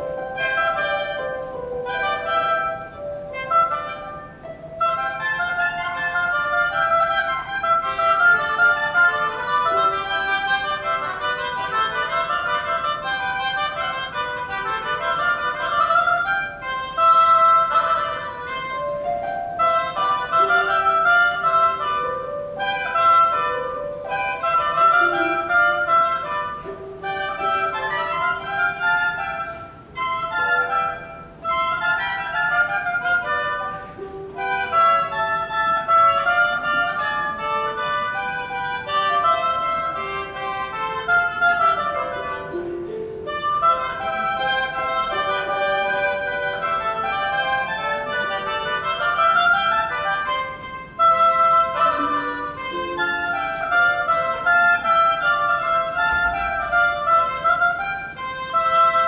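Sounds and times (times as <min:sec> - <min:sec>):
harp playing: 0:00.0 - 0:59.0
oboes playing melodies: 0:00.0 - 0:59.0.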